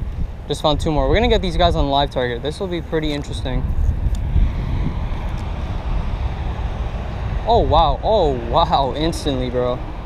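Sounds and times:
outdoor rushing noise: 0.0 - 10.0
wind buffeting microphone: 0.0 - 10.0.

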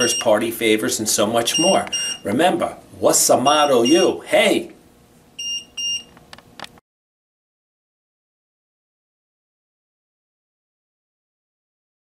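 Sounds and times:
high-pitched electronic beeps: 0.0 - 0.3, 1.5 - 2.3, 3.8 - 4.2.

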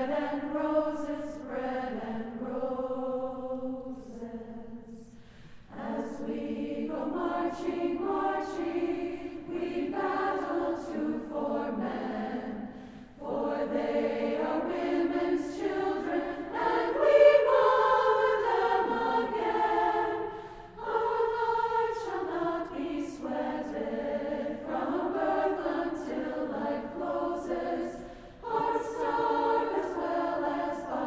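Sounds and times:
women's choir singing: 0.0 - 31.0.

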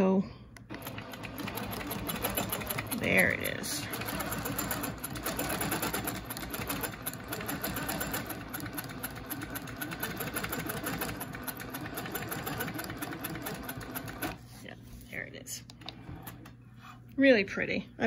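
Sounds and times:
quilting machine stitching: 0.6 - 14.4.

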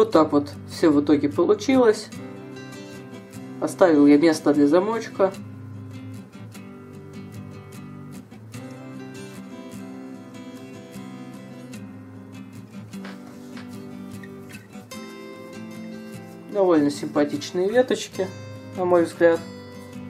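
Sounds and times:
acoustic guitar plucked notes: 0.0 - 20.0.

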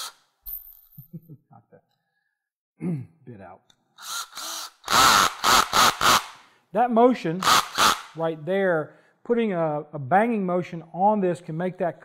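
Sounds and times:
cordless drill running in bursts: 4.0 - 6.4, 7.4 - 8.1
drill clutch ratcheting: 4.0 - 6.4.

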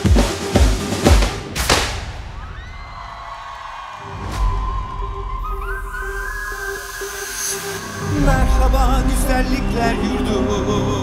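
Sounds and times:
heavy drum hits: 0.0 - 2.4.

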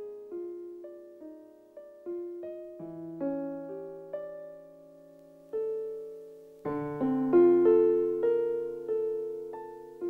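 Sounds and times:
electric piano slow melody: 0.0 - 10.0.

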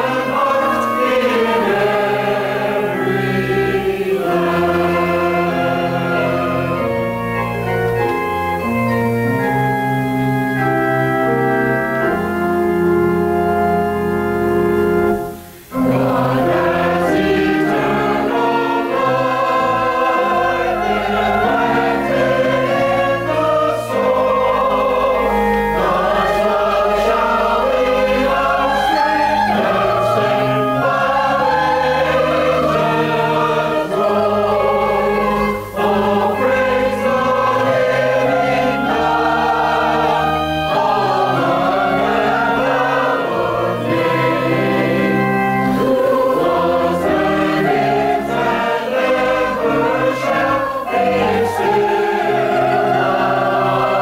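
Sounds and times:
choir singing: 0.0 - 54.0
instrumental accompaniment: 0.0 - 54.0.

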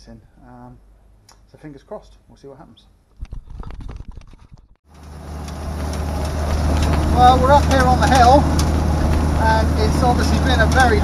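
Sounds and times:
scattered clicks and knocks: 3.2 - 9.3, 10.0 - 11.0
tractor engine running: 4.9 - 11.0.

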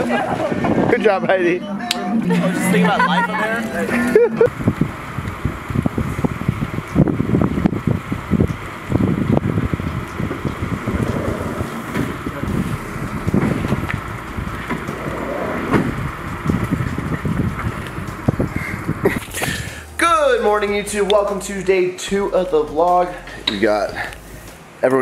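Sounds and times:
wind buffeting microphone: 0.0 - 1.4, 4.4 - 19.8.

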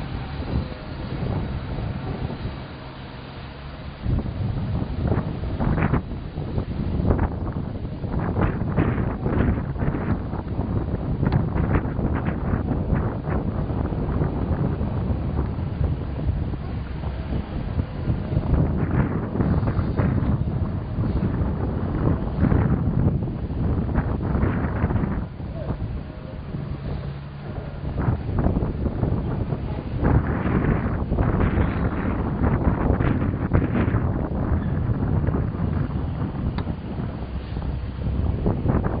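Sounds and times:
freight train rumbling and knocking: 0.0 - 39.0
wind buffeting microphone: 0.0 - 39.0.

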